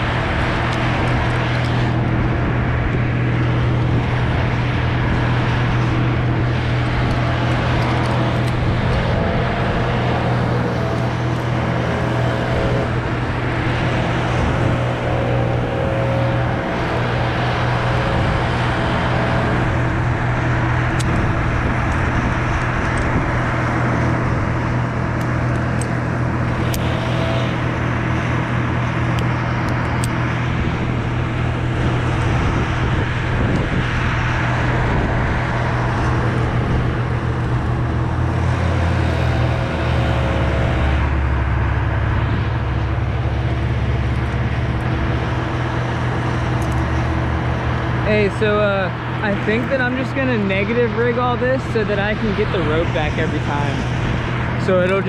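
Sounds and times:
engine drone: 0:00.0 - 0:55.0.

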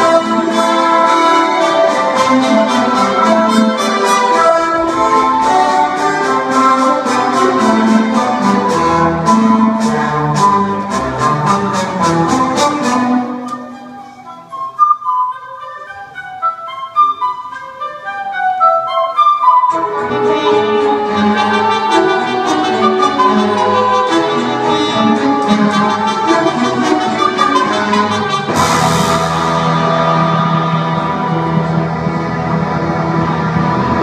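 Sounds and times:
rock band and orchestra playing: 0:00.0 - 0:14.0, 0:19.5 - 0:34.0
cymbal crash: 0:28.5 - 0:31.2.

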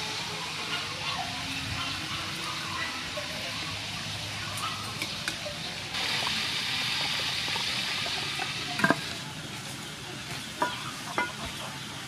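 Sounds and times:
meat sizzling in hot oil: 0:05.0 - 0:09.2.

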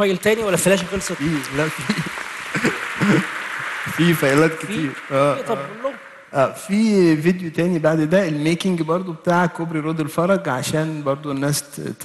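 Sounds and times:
audience applauding: 0:00.0 - 0:06.3.

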